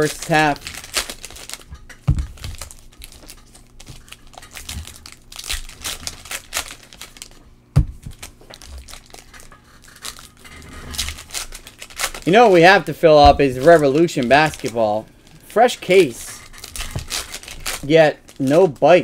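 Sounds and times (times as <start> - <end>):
wrappers crinkling and tearing: 0.0 - 7.4, 8.0 - 19.0
heavy thump: 13.2 - 13.7.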